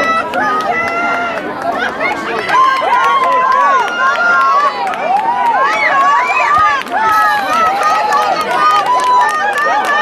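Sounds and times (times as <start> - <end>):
crowd yelling and cheering: 0.0 - 10.0.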